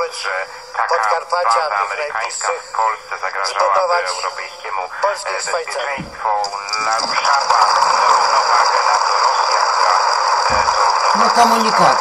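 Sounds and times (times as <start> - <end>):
radio static hiss: 0.0 - 12.0
voice on the radio: 0.0 - 12.0.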